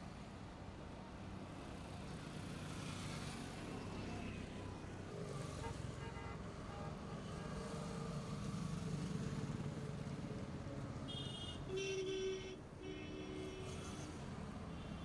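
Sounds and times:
highway traffic hum: 0.0s - 15.0s.

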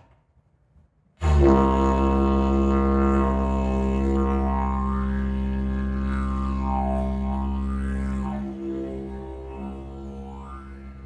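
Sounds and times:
didgeridoo drone: 1.2s - 11.0s.

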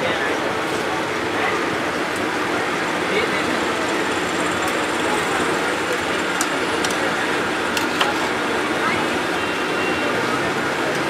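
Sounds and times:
indistinct voices: 0.0s - 11.0s
street noise: 0.0s - 11.0s
metal utensils clicking on pan: 7.7s - 8.2s.

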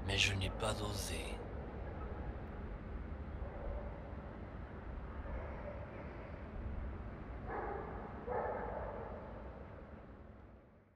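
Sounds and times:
dog barking: 5.3s - 6.0s, 7.5s - 9.2s.

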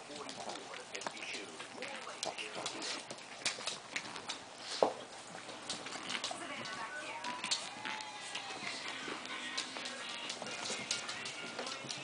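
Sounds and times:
puppy claws tapping on wooden floor: 0.0s - 12.0s.

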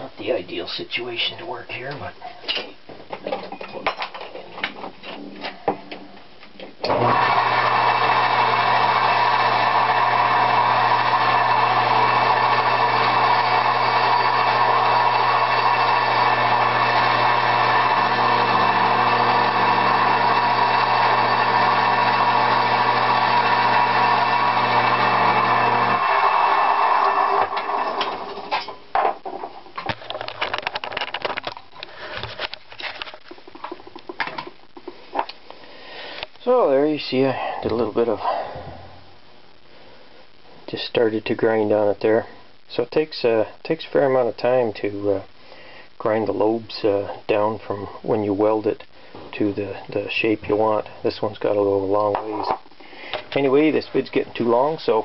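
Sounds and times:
bench grinder grinding steel: 6.9s - 28.5s.

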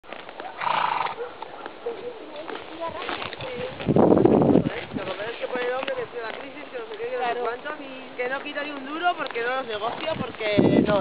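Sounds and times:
horse hooves on dirt: 0.0s - 11.0s.

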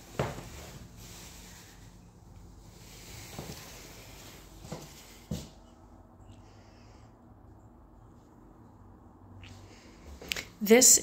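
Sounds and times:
faint low hum: 0.0s - 11.0s
footsteps on hardwood floor: 4.6s - 5.7s.

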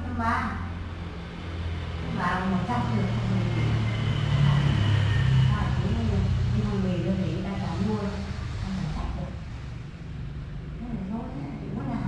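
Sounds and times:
faint high whine: 0.0s - 9.4s
low machine rumble: 0.0s - 12.0s.

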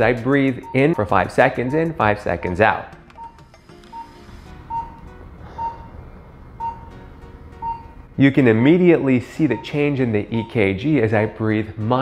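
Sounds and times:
patient monitor beeping: 0.0s - 11.4s
soft slow inhale: 5.4s - 6.4s.

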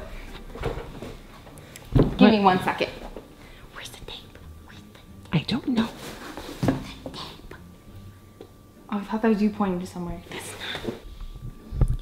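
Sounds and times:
person whispering: 3.7s - 5.1s.

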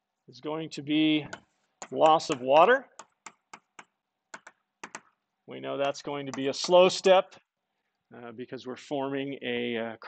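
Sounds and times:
chalk tapping on blackboard: 1.3s - 5.2s, 5.8s - 7.0s.

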